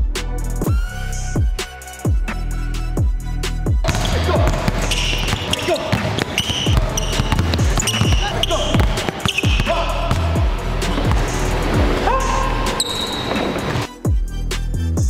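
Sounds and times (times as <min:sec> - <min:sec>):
background music: 0:00.0 - 0:15.0
basketballs bouncing on hardwood: 0:03.8 - 0:12.1
voices: 0:03.8 - 0:13.9.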